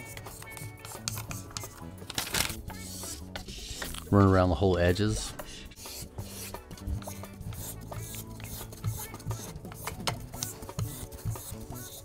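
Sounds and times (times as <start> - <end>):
squeegee rubbing vinyl: 0.0 - 4.1, 5.7 - 12.0
background music: 0.0 - 12.0.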